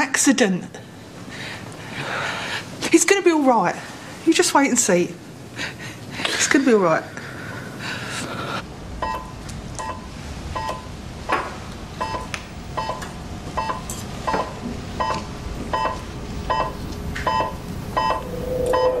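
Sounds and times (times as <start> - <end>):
patient monitor beeping: 9.0 - 10.9, 12.0 - 19.0
held low monitor tone: 12.0 - 19.0.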